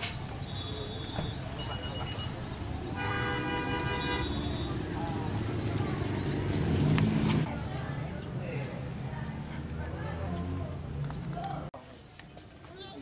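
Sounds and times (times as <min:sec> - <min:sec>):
people talking: 0:00.0 - 0:13.0
street noise: 0:00.0 - 0:13.0
vehicle horn toot: 0:02.9 - 0:04.8.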